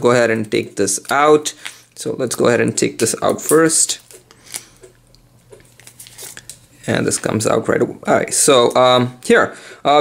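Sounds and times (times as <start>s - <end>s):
man talking: 0.0s - 4.1s, 6.8s - 10.0s
plastic film rustling: 5.5s - 7.5s.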